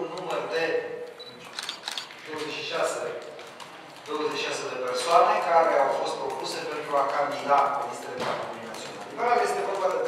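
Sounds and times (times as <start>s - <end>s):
man talking: 0.0s - 1.1s, 2.2s - 3.3s, 4.1s - 10.0s
camera shutter clicks: 1.5s - 2.2s.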